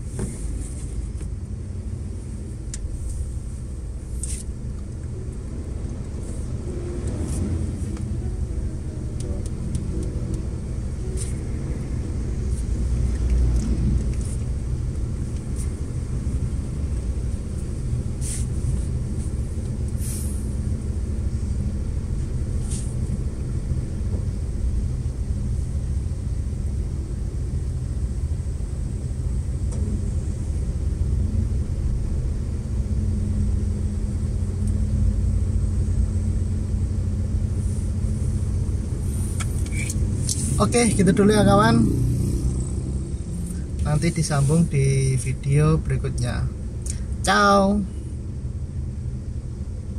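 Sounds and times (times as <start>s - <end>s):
car engines idling: 0.0s - 49.9s.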